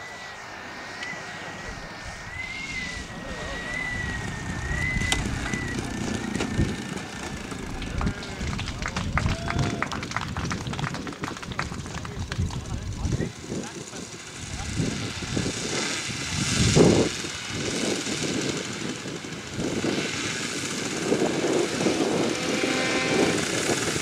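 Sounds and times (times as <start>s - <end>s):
faint wavering whine: 0.0s - 9.0s
model airplane engine running: 0.0s - 24.0s.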